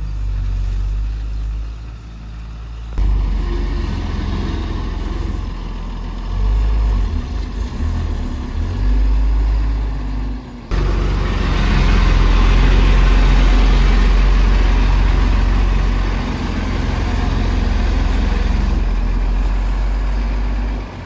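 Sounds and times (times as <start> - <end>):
diesel truck engine running: 0.0 - 21.0.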